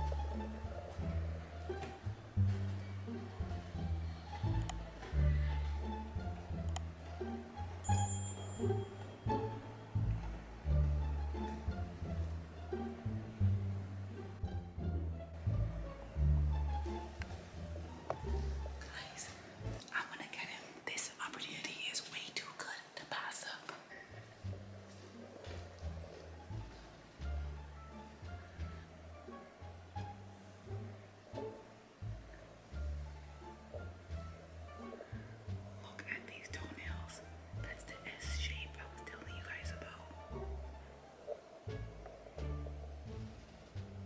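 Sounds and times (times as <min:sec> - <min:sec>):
background music with low bass: 0:00.0 - 0:20.5, 0:23.2 - 0:44.0
woman whispering: 0:18.8 - 0:24.0, 0:35.8 - 0:40.2.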